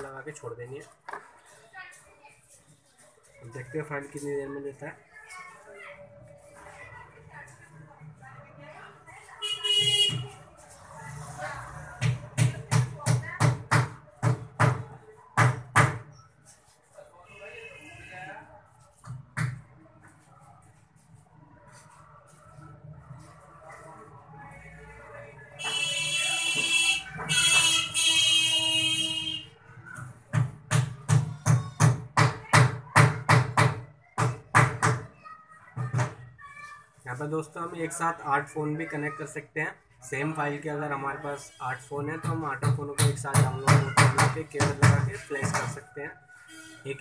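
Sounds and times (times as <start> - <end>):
faint background voices talking: 0.0 - 47.0.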